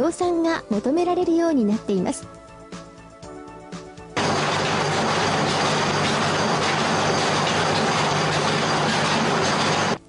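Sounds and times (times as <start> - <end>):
low motor hum: 4.2 - 10.0.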